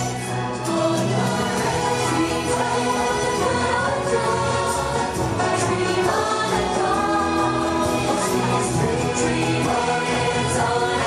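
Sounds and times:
parade music with choir singing: 0.0 - 11.0.

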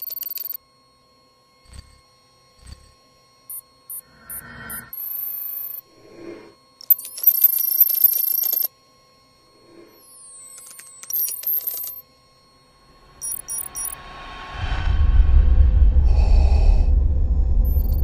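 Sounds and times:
sweeping electronic tones: 3.5 - 8.7, 9.4 - 14.8, 17.6 - 18.0
high digital chirps: 3.9 - 5.8, 13.0 - 14.2
low rumble: 12.9 - 18.0
short high beeps: 13.1 - 14.0
quick triple beep: 13.2 - 14.2.

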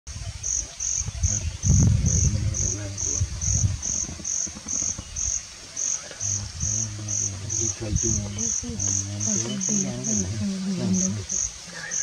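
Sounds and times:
insect chirping: 0.1 - 12.0
low rumbling and scraping: 1.2 - 11.4.

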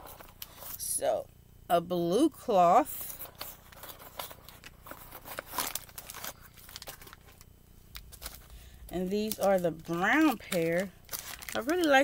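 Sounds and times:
box and wrapping rustling: 2.9 - 7.4, 8.0 - 12.0.

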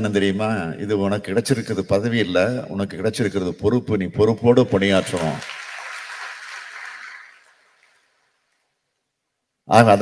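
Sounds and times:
audience applause: 4.8 - 8.2.

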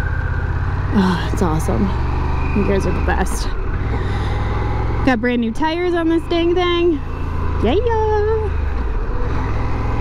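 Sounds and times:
motorcycle engine rumble: 0.0 - 10.0
road and wind noise: 0.0 - 10.0.

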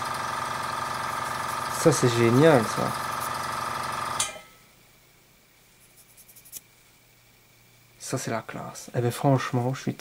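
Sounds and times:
electric motor humming: 0.0 - 4.2.

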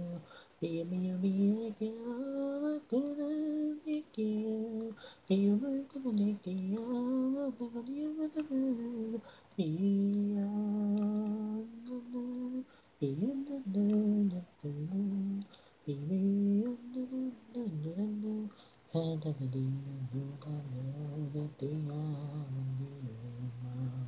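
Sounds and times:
person singing a cappella: 0.0 - 24.0.

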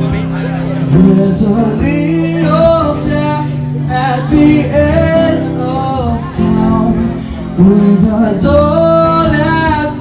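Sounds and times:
acoustic guitars: 0.0 - 10.0
man singing: 0.0 - 10.0.

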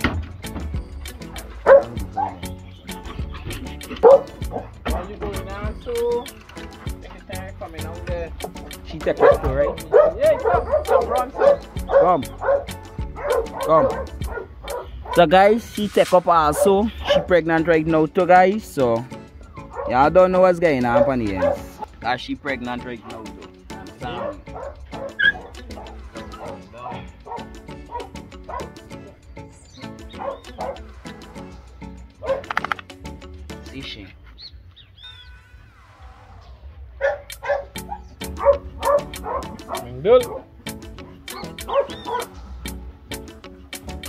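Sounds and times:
background music with steady beat: 0.0 - 34.1, 37.0 - 44.0
puppies yipping and whimpering: 9.1 - 15.3, 19.4 - 19.9, 24.0 - 31.5, 36.9 - 42.4.

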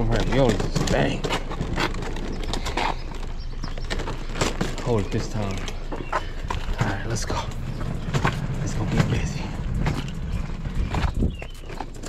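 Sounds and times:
hand truck rattling on pavement: 0.0 - 12.0.

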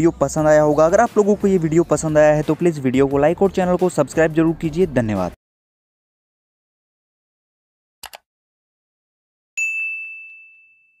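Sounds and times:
bell ding: 9.6 - 11.0.

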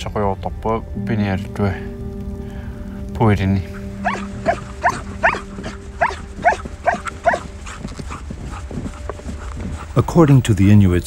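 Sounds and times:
sled dogs yelping: 3.7 - 10.4.

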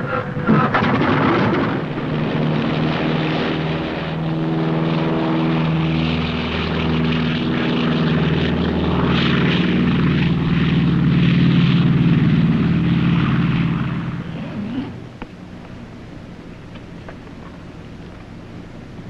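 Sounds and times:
propeller airliner engines droning: 0.0 - 19.0.

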